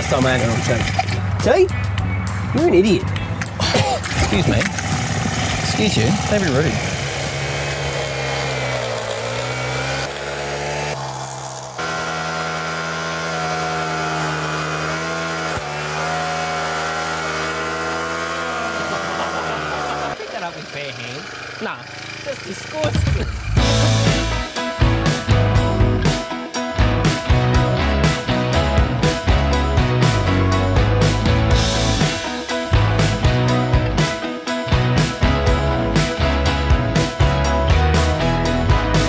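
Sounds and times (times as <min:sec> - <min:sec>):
lawn edger engine running: 0:00.0 - 0:01.4, 0:03.8 - 0:24.5
music: 0:00.0 - 0:04.6, 0:23.0 - 0:39.0.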